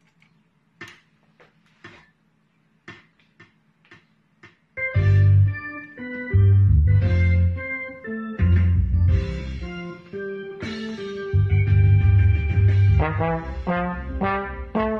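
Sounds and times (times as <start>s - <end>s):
rock shuffle backing track: 2.9s - 14.3s
organ-like keyboard chords: 3.9s - 14.9s
low bass notes: 4.8s - 10.0s, 11.3s - 14.9s.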